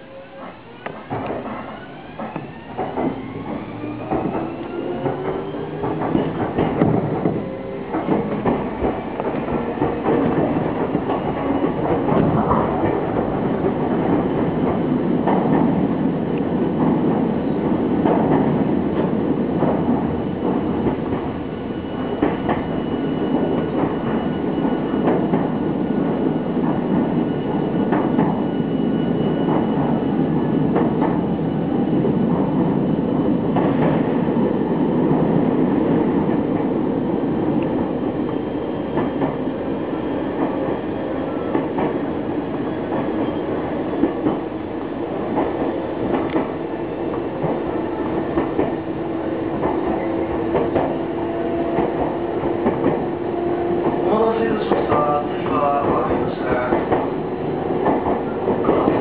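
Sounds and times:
rail joint clacks: 0.0 - 59.0
train wheels rumbling on rail: 0.0 - 59.0.

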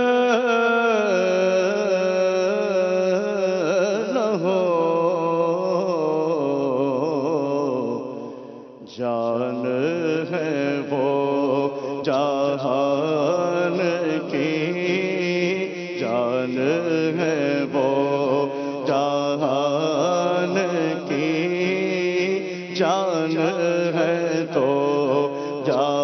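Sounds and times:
man singing unaccompanied: 0.0 - 26.0.

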